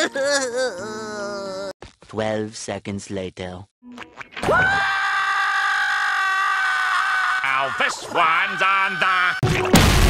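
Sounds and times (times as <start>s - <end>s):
cartoon character screaming: 0.0s - 1.7s.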